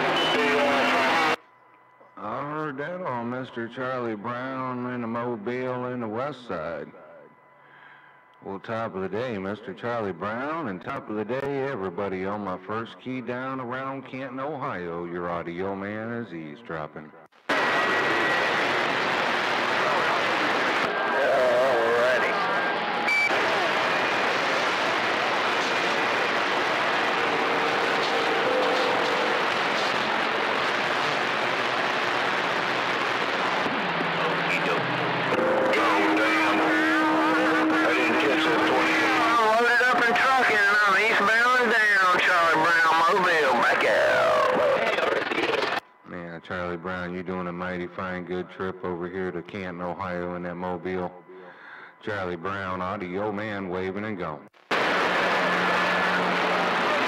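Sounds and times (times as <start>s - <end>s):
radio static hiss: 0.0s - 7.8s, 17.3s - 46.7s, 54.4s - 57.0s
whistling radio tones: 0.0s - 10.7s, 17.5s - 46.8s
garbled warbling radio voices: 19.7s - 23.9s, 33.6s - 45.8s.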